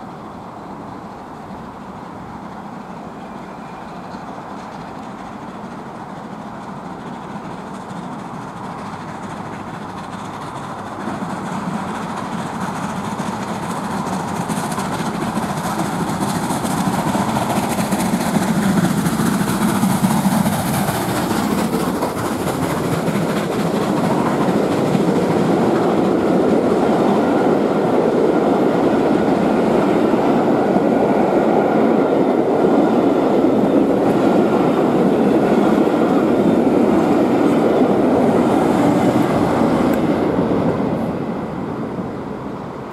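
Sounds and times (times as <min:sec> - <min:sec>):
steam locomotive passing: 0:00.0 - 0:42.9
train wheels on rails: 0:00.0 - 0:42.9.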